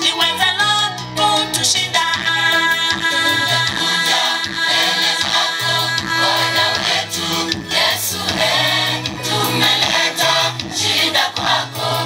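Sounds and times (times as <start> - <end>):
amplified backing music: 0.0 - 12.0
gospel choir singing: 2.0 - 12.0.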